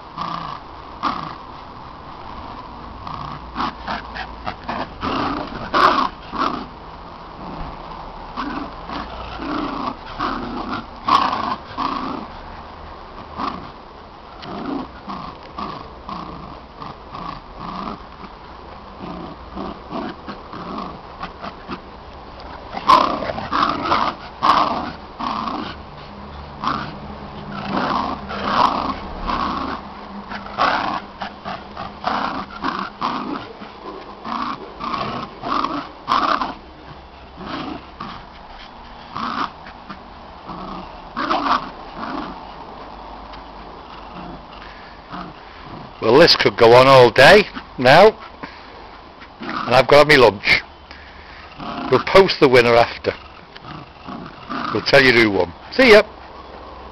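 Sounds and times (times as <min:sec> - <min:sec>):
dogs growling in play: 0:00.0 - 0:56.9.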